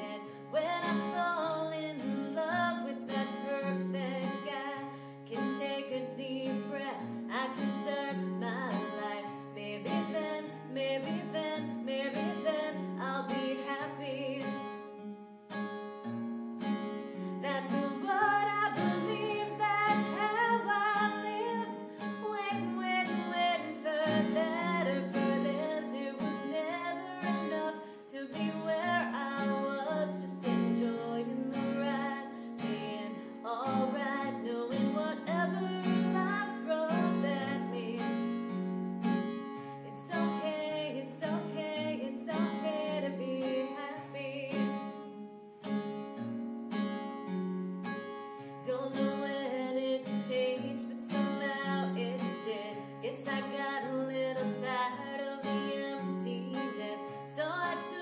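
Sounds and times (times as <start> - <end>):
woman singing: 0.0 - 15.0, 17.2 - 38.6, 39.6 - 45.2, 48.5 - 58.0
strummed acoustic guitar: 0.0 - 58.0.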